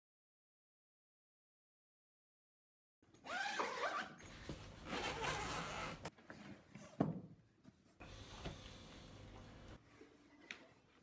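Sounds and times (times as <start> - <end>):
zipper click: 3.1 - 6.1
zipper being pulled open: 3.2 - 6.1.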